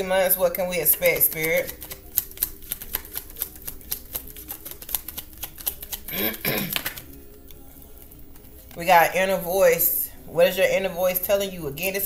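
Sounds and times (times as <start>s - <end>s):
cards being shuffled: 0.8s - 8.8s.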